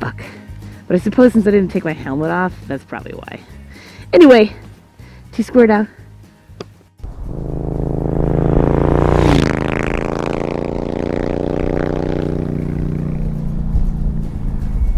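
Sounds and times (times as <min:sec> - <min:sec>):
motorcycle engine starting and running: 0:07.0 - 0:14.9.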